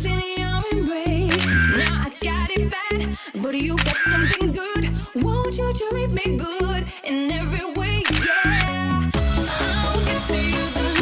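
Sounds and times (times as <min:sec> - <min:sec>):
pop song with singer: 0:00.0 - 0:11.0.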